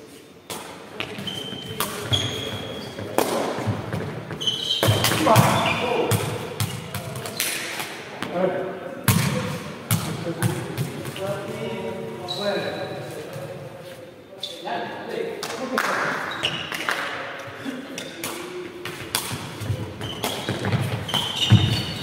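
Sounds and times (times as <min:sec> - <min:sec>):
ball kicks and bounces echoing: 0:18.2 - 0:22.0.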